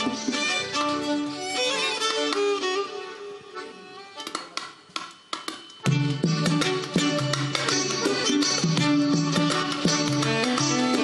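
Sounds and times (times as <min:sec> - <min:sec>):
two violins playing a melody: 0:00.0 - 0:04.3.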